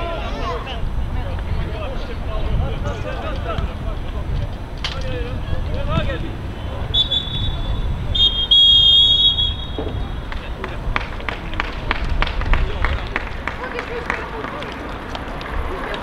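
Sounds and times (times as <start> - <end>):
referee's whistle blast: 6.9 - 10.1
crowd clapping: 9.6 - 16.0.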